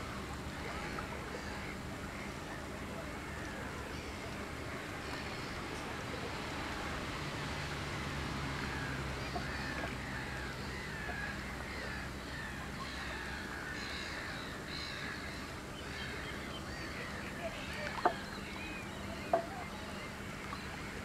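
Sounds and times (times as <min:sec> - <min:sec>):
birds calling: 0:08.0 - 0:21.0.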